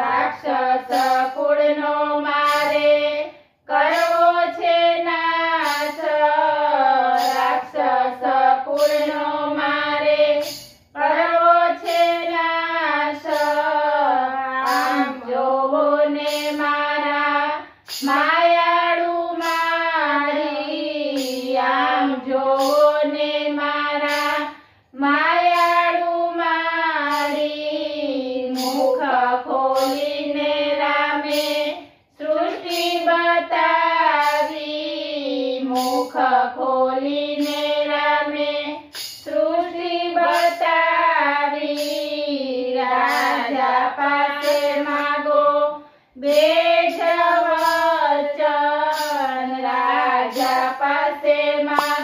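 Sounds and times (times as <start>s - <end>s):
women singing in unison: 0.0s - 52.0s.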